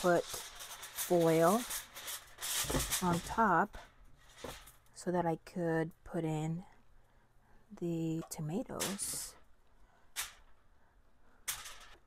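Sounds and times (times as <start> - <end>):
aluminium foil crinkling: 0.0 - 4.9.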